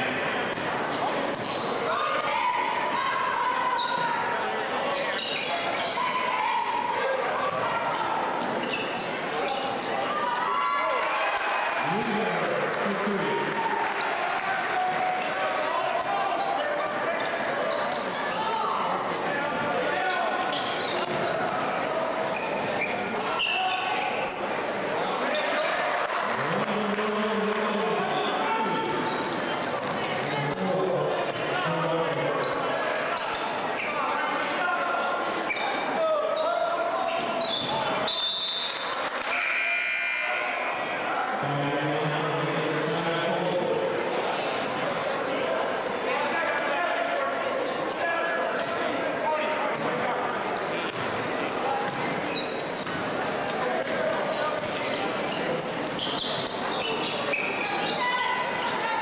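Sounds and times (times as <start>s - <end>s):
crowd voices and shouts: 0.0s - 59.0s.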